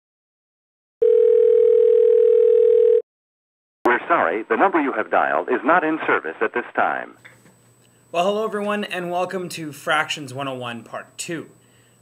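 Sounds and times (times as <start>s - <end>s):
telephone line tone: 1.0s - 3.0s.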